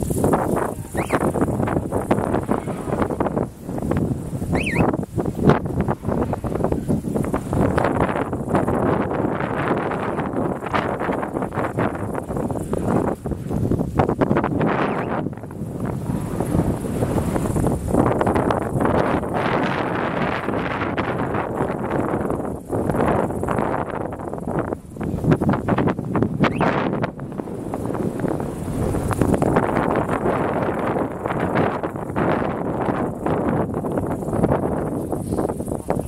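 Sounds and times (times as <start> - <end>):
wind blowing across microphone: 0.0 - 36.0.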